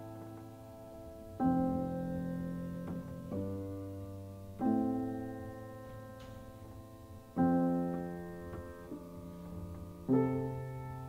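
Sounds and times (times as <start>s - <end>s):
slow solo piano chords: 0.0s - 11.0s.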